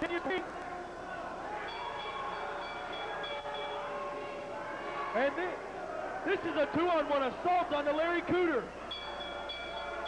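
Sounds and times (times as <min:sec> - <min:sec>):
wrestling ring bell ringing: 0:01.5 - 0:04.5, 0:08.8 - 0:10.0.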